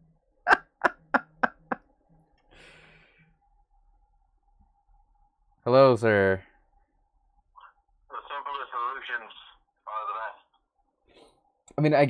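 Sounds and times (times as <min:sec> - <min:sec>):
man laughing breathily: 0:00.5 - 0:01.8
soft exhale: 0:02.5 - 0:03.3.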